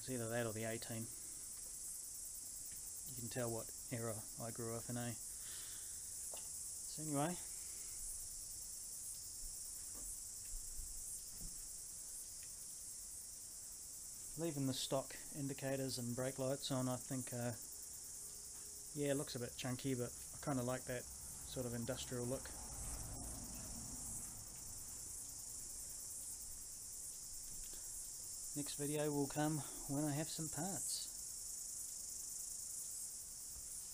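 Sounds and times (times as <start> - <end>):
high-pitched hiss: 0.0 - 33.9
insects chirring: 0.0 - 33.9.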